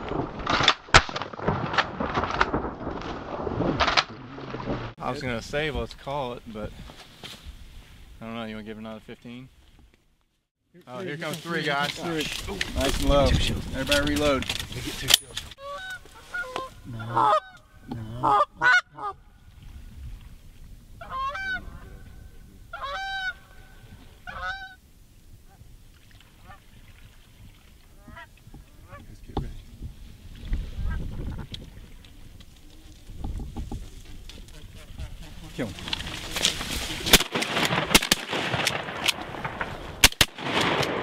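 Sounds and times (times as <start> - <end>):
goose honking: 15.6 - 17.6, 18.2 - 19.2, 21.0 - 22.0, 22.7 - 24.8.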